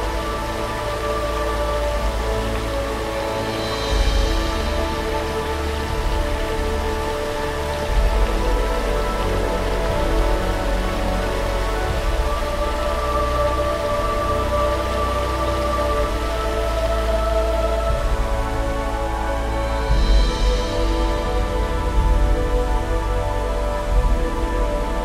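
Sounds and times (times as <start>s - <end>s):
ambient music over loudspeakers: 0.0s - 25.0s
rush of water: 0.0s - 25.0s
very deep drone: 0.0s - 25.0s.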